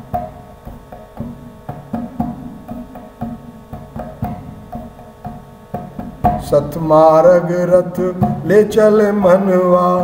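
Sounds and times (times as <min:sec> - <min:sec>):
drum stroke: 0:00.0 - 0:10.0
man singing devotional song: 0:06.4 - 0:10.0.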